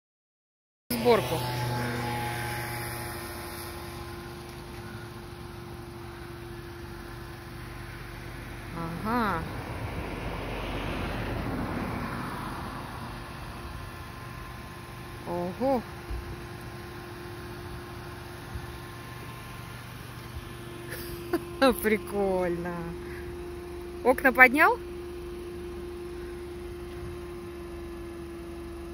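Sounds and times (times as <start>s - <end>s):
electro-hydraulic pump hum: 0.9s - 28.9s.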